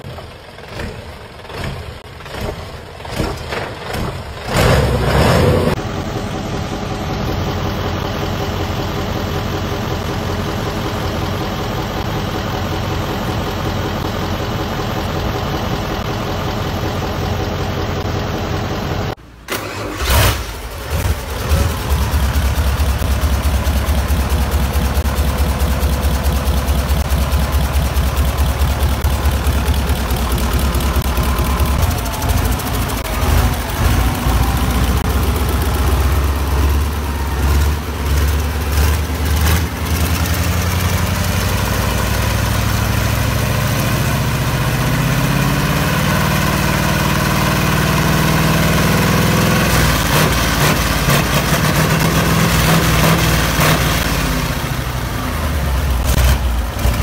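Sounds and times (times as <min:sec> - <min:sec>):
bus engine idling and revving: 0:00.0 - 0:57.0.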